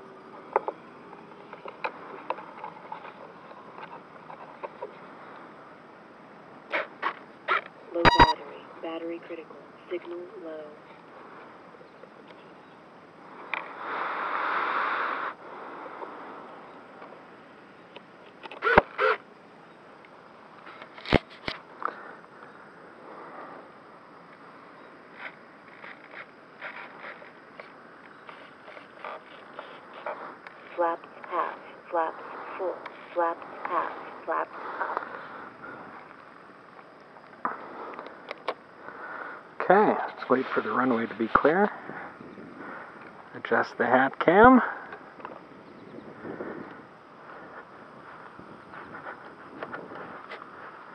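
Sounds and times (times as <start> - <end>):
rustling noise: 25.1 - 36.4, 46.1 - 50.9.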